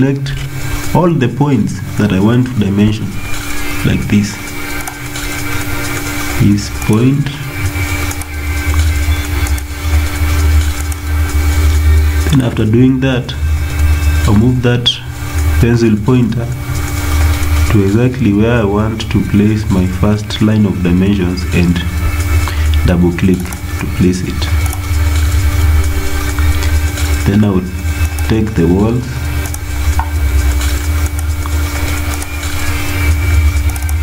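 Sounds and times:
low mechanical hum: 0.0 - 34.0.

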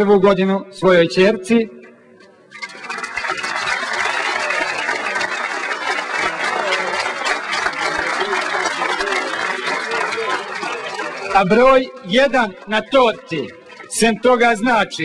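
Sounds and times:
audience applauding: 2.5 - 15.0.

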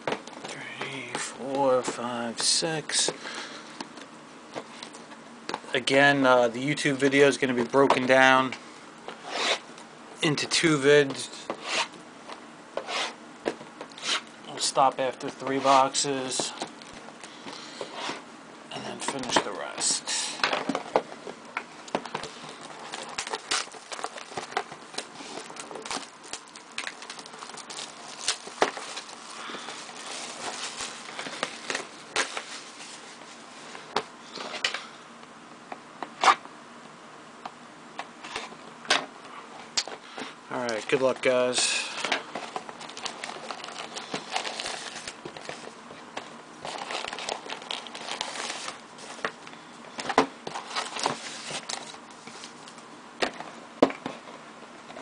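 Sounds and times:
hand touching shrink-wrapped boxes: 22.0 - 34.0
plastic wrap crinkling: 22.1 - 34.4, 40.6 - 52.8.

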